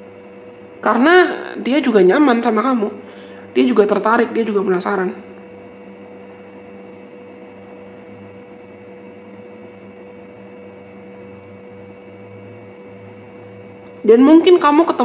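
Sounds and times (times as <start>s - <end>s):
steady tonal hum: 0.0s - 15.0s.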